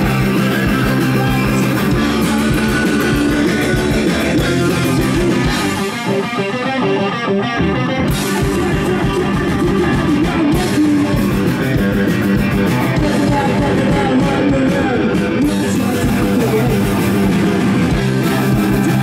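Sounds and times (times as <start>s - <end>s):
bass guitar: 0.0s - 19.0s
drums: 0.0s - 19.0s
electric guitars: 0.0s - 19.0s.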